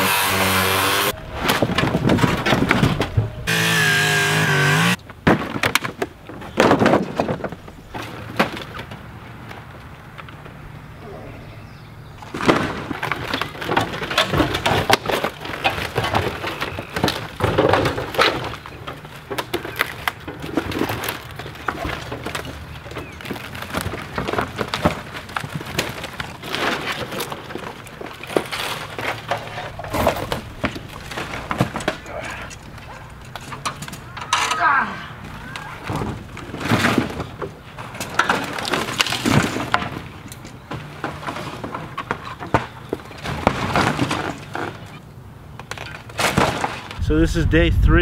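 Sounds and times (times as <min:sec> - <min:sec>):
wood cracking and splintering: 0:00.0 - 0:10.5, 0:12.2 - 0:47.1
debris thrown onto pile: 0:01.2 - 0:03.5, 0:05.1 - 0:09.0, 0:12.2 - 0:45.0, 0:45.7 - 0:47.0.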